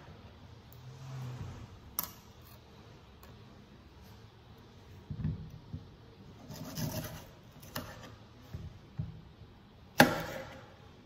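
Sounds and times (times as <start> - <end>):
knife scraping banana peel: 6.4 - 8.2.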